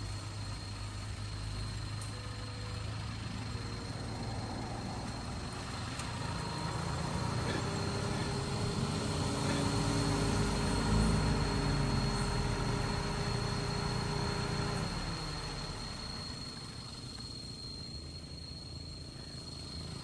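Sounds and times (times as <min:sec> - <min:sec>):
car engine idling: 0:00.0 - 0:20.0.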